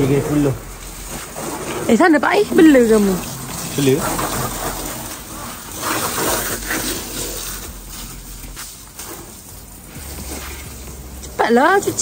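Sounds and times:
hose water spraying on car: 0.0 - 12.0.

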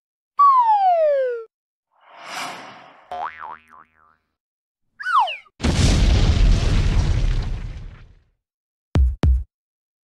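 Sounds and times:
springy boing: 3.1 - 4.2.

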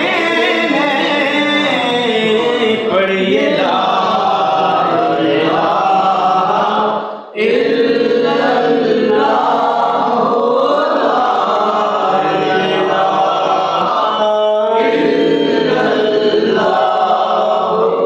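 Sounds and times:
men chanting: 0.0 - 18.0.

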